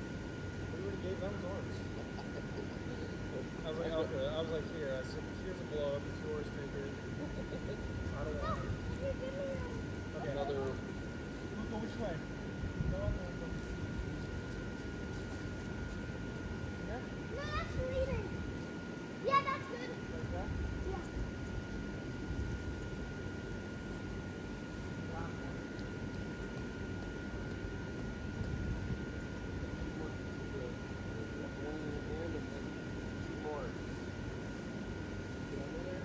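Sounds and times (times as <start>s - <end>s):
blower fans running: 0.0s - 36.0s
small child's high voice: 17.3s - 18.4s, 19.2s - 20.0s.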